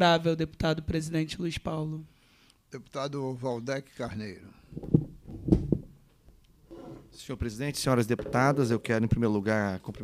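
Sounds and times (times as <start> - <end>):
dull thumps on microphone: 4.8 - 6.0.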